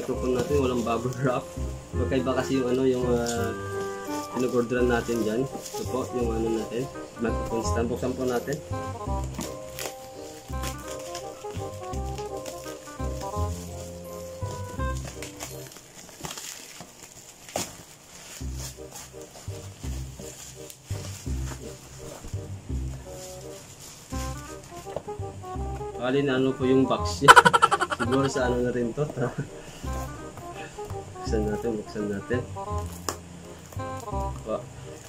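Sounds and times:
background music with steady beat: 0.0 - 15.9, 18.3 - 35.0
plastic packaging crinkling: 2.5 - 7.2, 8.0 - 22.4, 23.0 - 25.0
scissors cutting parcel: 2.7 - 6.9, 8.0 - 22.4.

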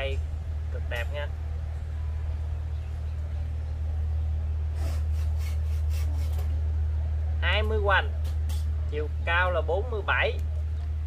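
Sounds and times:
low hum: 0.0 - 11.0
tape measure scraping bark: 4.8 - 6.5.

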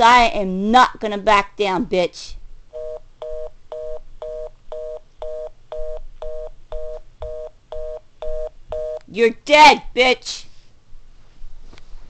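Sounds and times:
telephone fast busy signal: 2.8 - 9.0.

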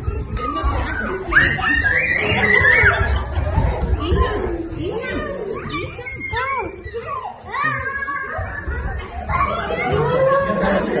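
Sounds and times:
adults chattering and laughing: 0.0 - 11.0
children shrieking and shouting: 0.0 - 11.0
child high-pitched squeal: 1.0 - 3.1.

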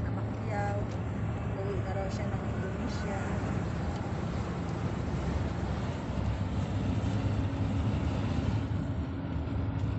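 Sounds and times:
road and engine rumble in car: 0.0 - 9.9.

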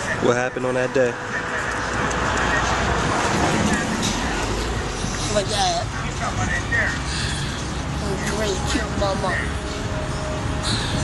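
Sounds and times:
motor vehicle rumble: 0.0 - 11.0
road hiss: 6.7 - 8.5.

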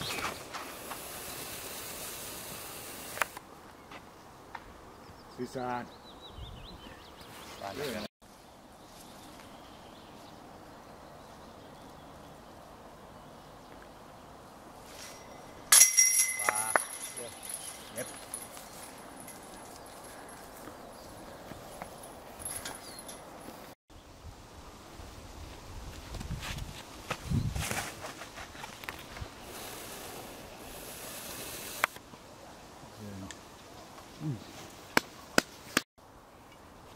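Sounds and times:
metal chains crashing and jingling: 15.0 - 19.4
footsteps through grass: 17.9 - 22.3.

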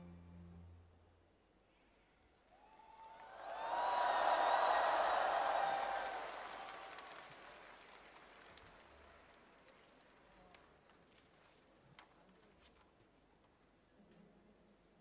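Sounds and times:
audience applauding and cheering: 2.4 - 10.6.

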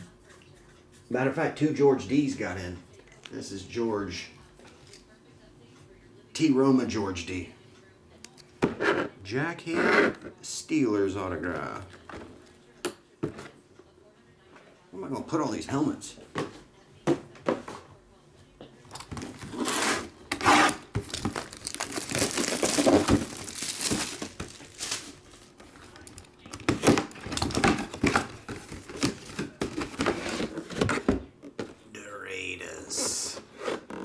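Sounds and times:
plastic shrink-wrap tearing: 19.1 - 29.4.

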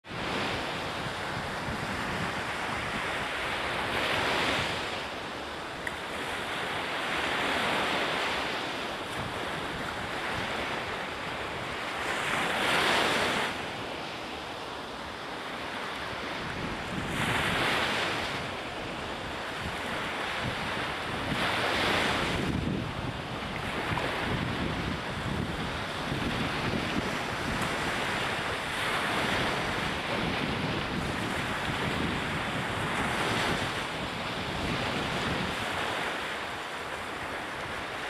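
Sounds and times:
waves breaking on a beach: 0.0 - 38.0
wind rumbling on microphone: 0.0 - 38.0.

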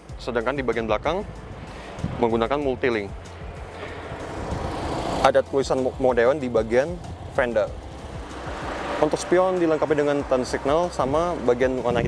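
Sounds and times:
vehicle passing on road: 0.0 - 12.0.

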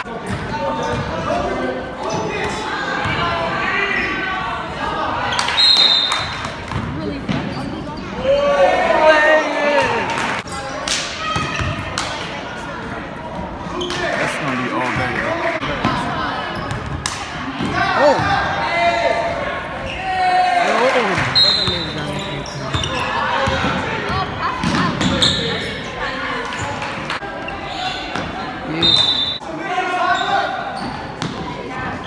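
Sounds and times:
people shouting in a gym: 0.0 - 6.6, 8.0 - 14.5, 15.6 - 21.8, 22.8 - 32.0.

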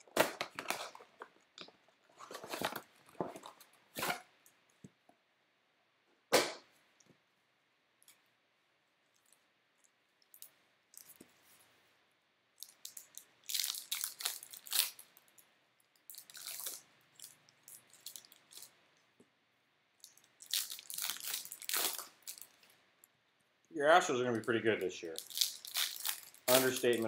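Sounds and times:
foil wrapper crinkling: 12.6 - 15.2, 16.1 - 18.7, 20.1 - 22.7, 24.5 - 27.0.

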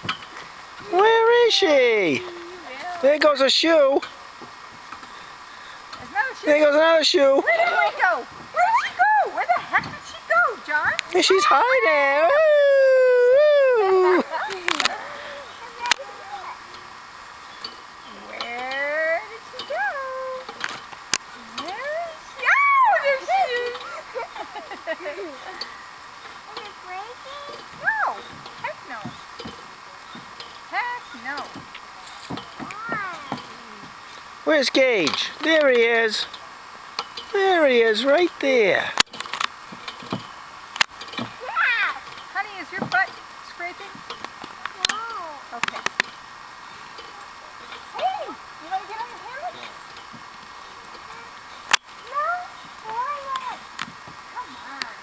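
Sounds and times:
person shouting: 11.3 - 14.2
people talking indistinctly: 21.4 - 29.3.

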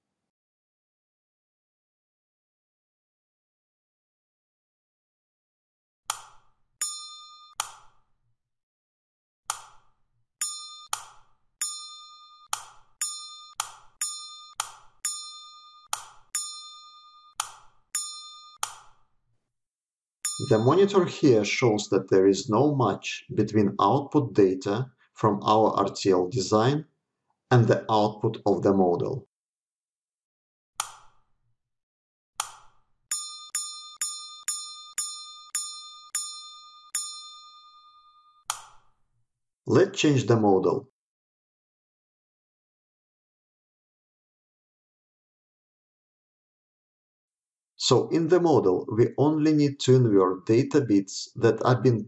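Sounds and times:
electronic ringing dings: 6.8 - 7.6, 10.4 - 17.4, 18.0 - 18.6, 20.3 - 21.1, 33.1 - 38.4.

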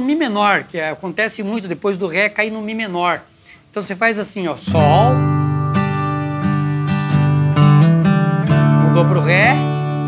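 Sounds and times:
acoustic guitar strumming: 4.6 - 10.0
guitar note fill: 4.7 - 10.0.

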